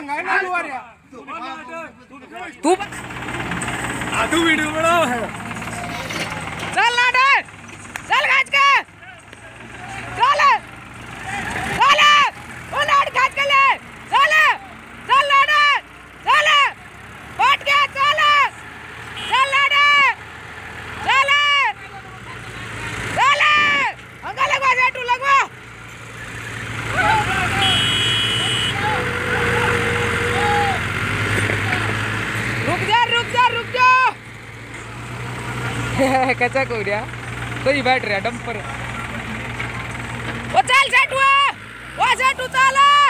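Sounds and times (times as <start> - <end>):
diesel engines idling: 0.0 - 43.0
person shouting: 10.0 - 10.7, 11.4 - 16.8, 17.4 - 18.6, 19.2 - 20.2, 21.0 - 21.9, 23.1 - 25.5, 26.9 - 30.9, 32.9 - 34.2.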